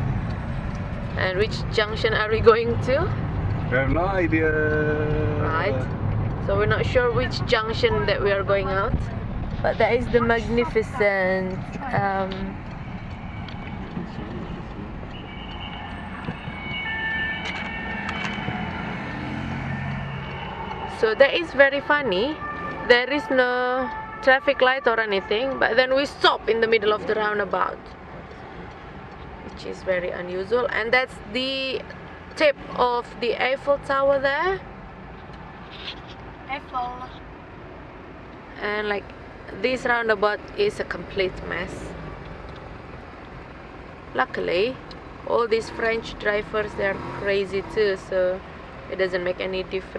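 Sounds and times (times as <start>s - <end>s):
engine and road rumble: 0.0s - 49.9s.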